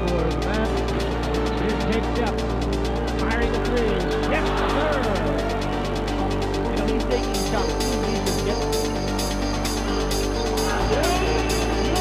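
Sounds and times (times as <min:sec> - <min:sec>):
music with fast beat: 0:00.0 - 0:12.0.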